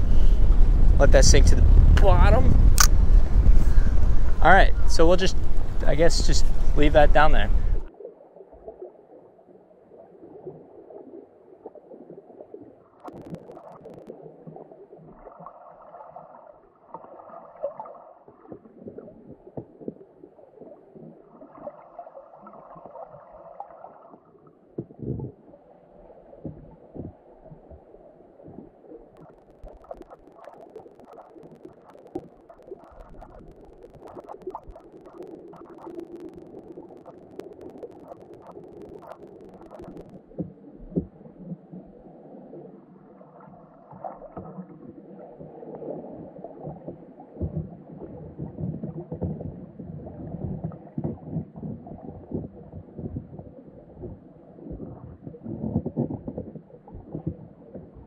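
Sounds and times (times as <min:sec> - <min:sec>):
muffled underwater noise: 0:00.0 - 0:07.9, 0:24.8 - 0:58.0
rumbling noise: 0:00.0 - 0:07.9, 0:29.3 - 0:40.4.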